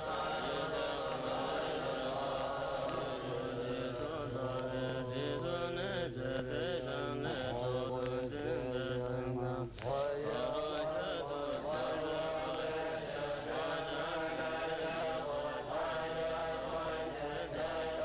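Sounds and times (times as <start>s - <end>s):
monks chanting in low voices: 0.0s - 18.0s.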